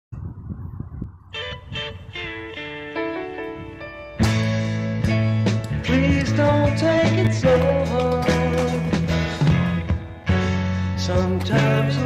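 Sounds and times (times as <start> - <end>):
guitar music: 1.3 - 12.0
scooter wheels rumbling on concrete: 5.5 - 10.2.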